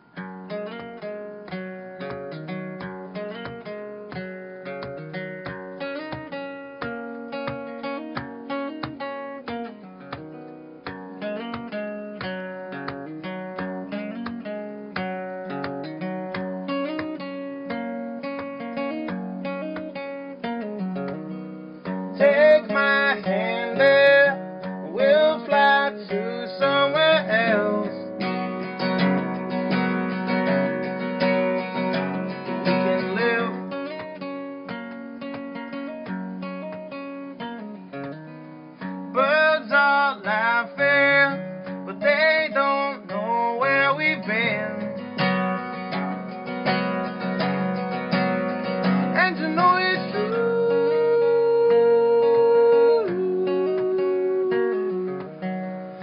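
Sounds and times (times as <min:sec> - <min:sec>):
fingerpicked acoustic guitar: 0:00.0 - 0:56.0.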